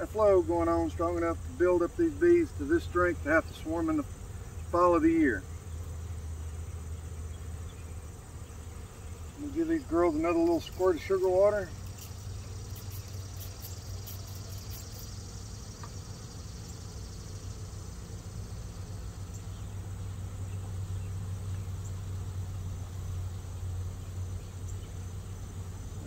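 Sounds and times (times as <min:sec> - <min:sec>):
insects chirring: 0:00.0 - 0:26.0
spray bottle squirts: 0:11.8 - 0:15.1.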